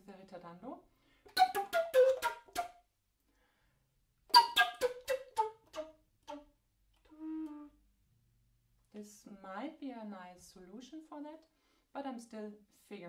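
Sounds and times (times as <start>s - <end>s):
recorder playing hard-tongued notes: 1.3s - 2.8s, 4.3s - 6.5s, 7.1s - 7.8s.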